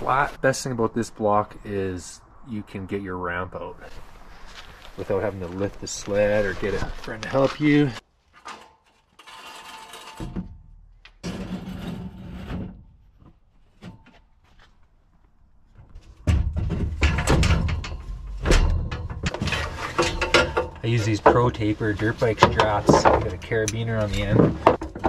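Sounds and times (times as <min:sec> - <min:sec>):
metal ramp scraping: 0:06.2 - 0:14.2, 0:15.8 - 0:25.0
low rumbling handling noise: 0:10.2 - 0:25.0.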